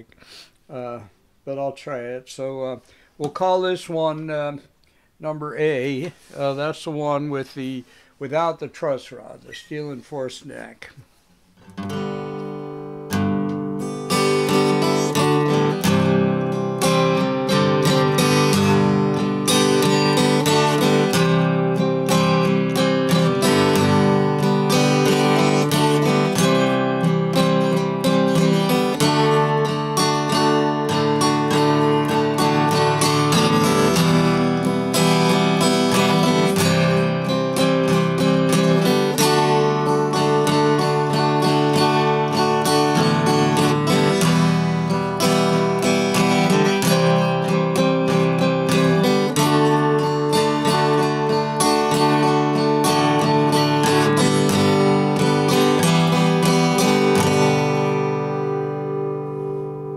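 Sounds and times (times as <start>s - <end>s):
acoustic guitar chords: 0.0s - 59.9s.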